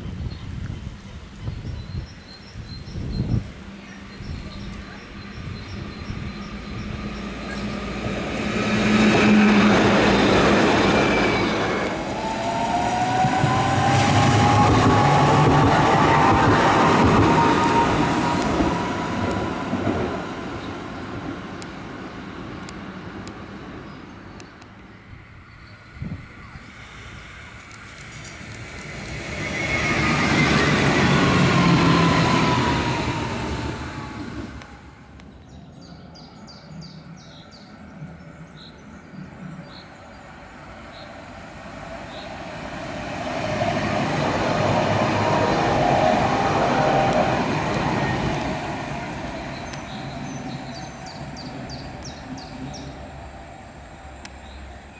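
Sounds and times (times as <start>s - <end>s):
trams passing on rails: 0.0s - 54.9s.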